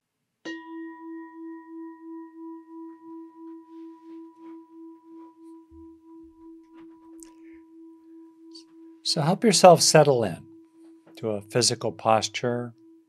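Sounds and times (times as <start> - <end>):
singing bowl ringing: 0.5 - 13.0.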